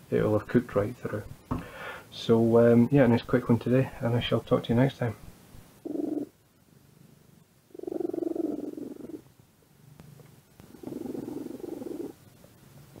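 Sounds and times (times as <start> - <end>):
cat purring: 5.8 - 9.3, 9.9 - 12.3.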